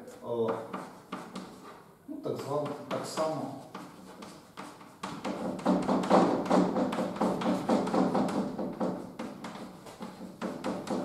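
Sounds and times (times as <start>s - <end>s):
chalk tapping and scraping: 0.0s - 11.0s.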